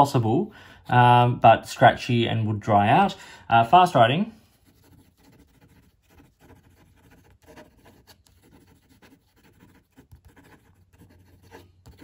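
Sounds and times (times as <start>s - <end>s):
pen writing on paper: 4.7s - 12.0s.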